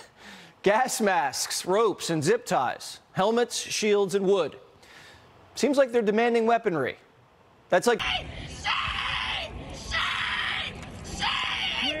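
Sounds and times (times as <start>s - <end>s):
person screaming: 8.0s - 12.0s.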